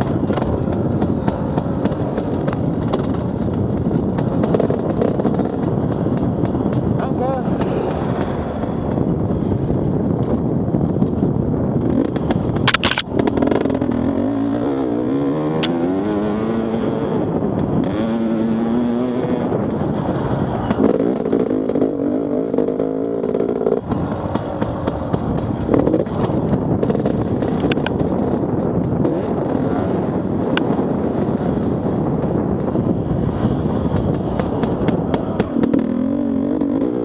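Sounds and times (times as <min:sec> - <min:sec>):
motorcycle engine revving: 0:00.0 - 0:37.0.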